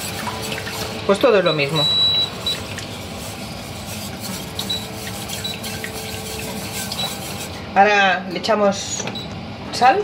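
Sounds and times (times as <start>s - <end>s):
whisk scraping metal saucepan: 0.0s - 7.8s.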